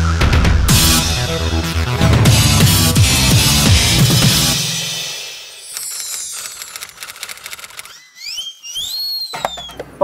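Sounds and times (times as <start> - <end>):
whistling tone sliding in pitch: 7.8 - 9.8.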